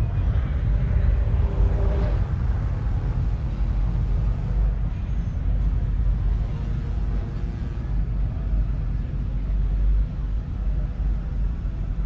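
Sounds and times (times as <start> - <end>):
spaceship engine rumble: 0.0 - 12.0.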